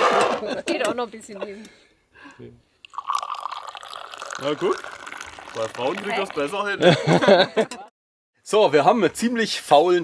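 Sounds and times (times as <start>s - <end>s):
tea pouring into glass: 2.8s - 6.8s.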